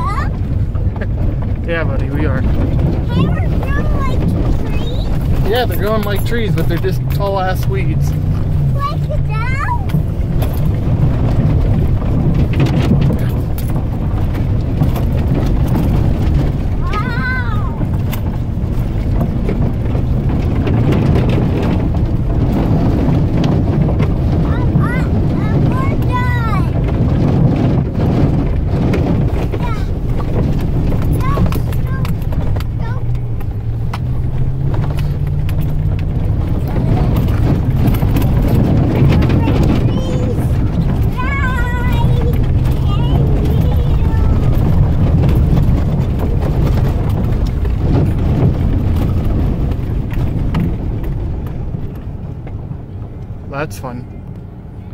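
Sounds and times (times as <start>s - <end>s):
truck engine running: 0.0s - 54.9s.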